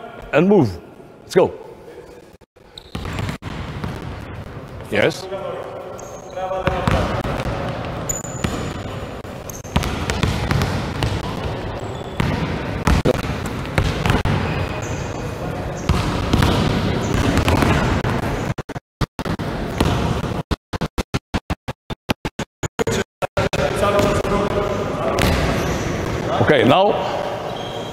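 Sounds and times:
basketballs bouncing on gym floor: 2.8s - 4.9s, 6.6s - 18.5s, 19.7s - 20.3s, 23.6s - 26.5s.

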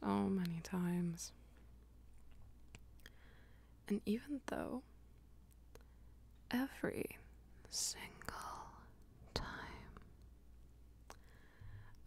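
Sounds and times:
woman whispering: 0.0s - 1.4s, 6.5s - 10.1s
faint background hum: 0.0s - 12.0s.

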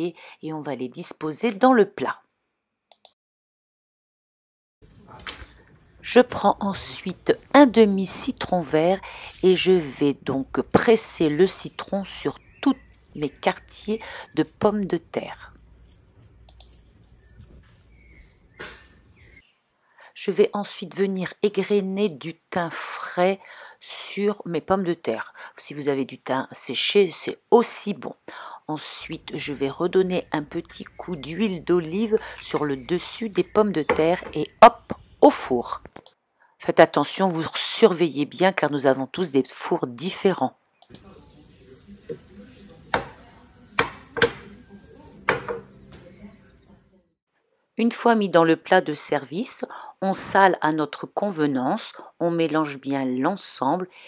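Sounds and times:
small clicks: 16.4s - 16.8s
roasting dish clattering on stone: 45.3s - 45.8s.

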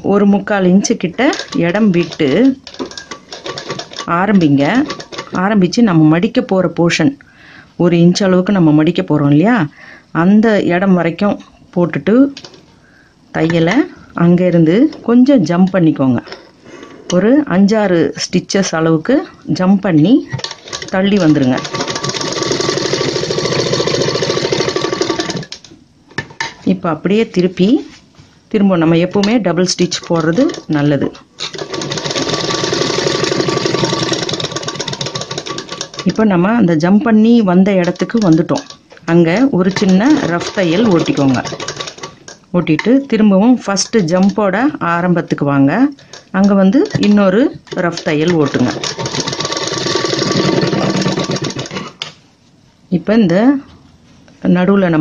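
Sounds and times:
sewing machine stitching: 1.2s - 5.6s, 20.3s - 25.6s, 29.6s - 36.3s, 37.6s - 42.3s, 46.1s - 52.1s.

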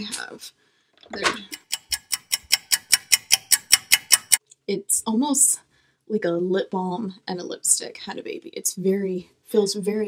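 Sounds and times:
clock ticking: 1.2s - 4.4s.

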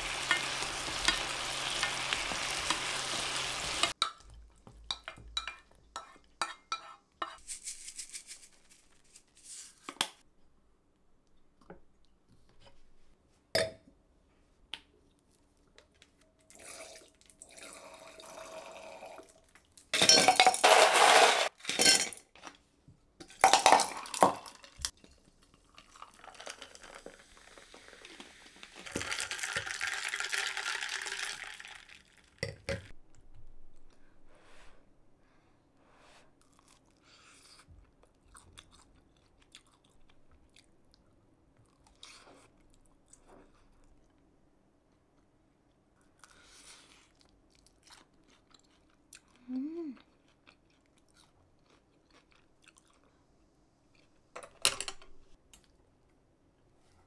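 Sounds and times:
ice clattering in glass: 20.0s - 22.2s, 23.4s - 24.7s.

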